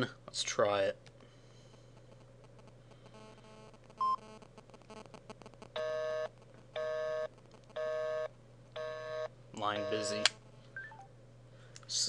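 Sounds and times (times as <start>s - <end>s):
telephone busy signal: 4.0s - 4.2s.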